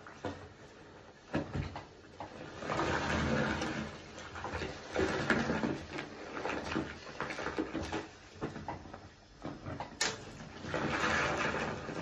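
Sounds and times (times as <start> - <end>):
soapy water pouring into bathtub: 2.3 - 9.0, 10.3 - 12.0.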